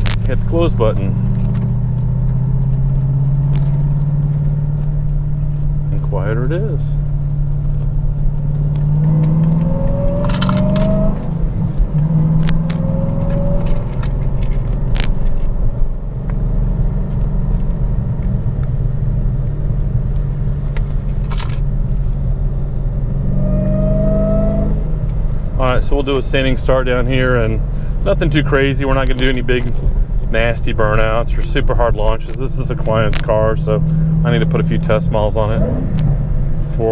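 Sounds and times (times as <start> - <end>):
car engine rumble from cabin: 0.0 - 36.9
faint tone rising in pitch: 23.0 - 25.0.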